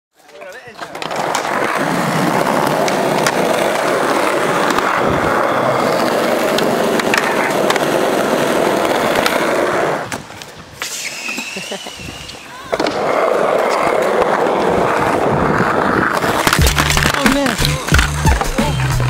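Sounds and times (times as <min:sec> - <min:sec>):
skateboard wheels rolling on concrete: 0:00.1 - 0:19.0.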